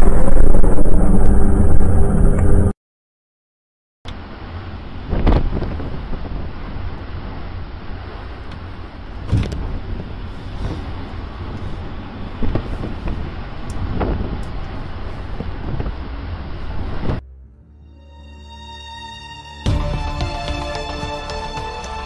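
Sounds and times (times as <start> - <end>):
strong wind buffeting microphone: 0.0 - 2.7, 4.2 - 17.2.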